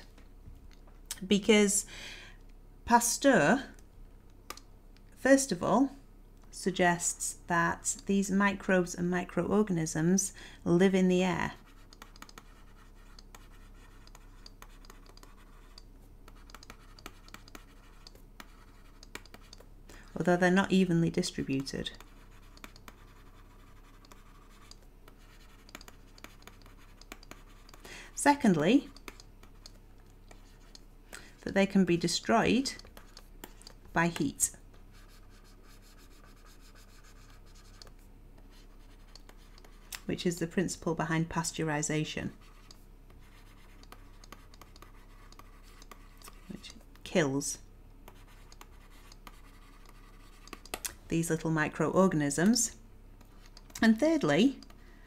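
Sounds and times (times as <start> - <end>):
low steady hum: 0.0 - 55.0
stylus writing on tablet screen: 6.6 - 30.8, 31.4 - 54.8.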